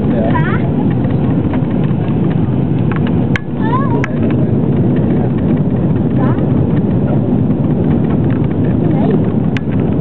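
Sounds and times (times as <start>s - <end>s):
jet engines and airflow rumble: 0.0s - 10.0s.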